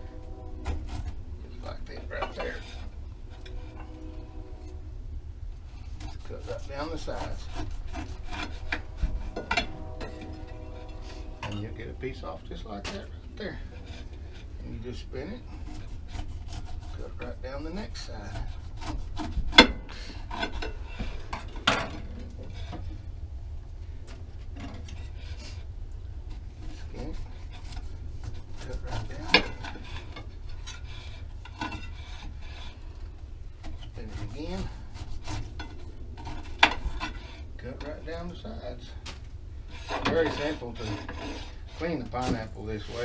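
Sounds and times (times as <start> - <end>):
knife scraping pineapple skin: 0.2 - 4.8, 5.7 - 23.0, 24.7 - 43.0.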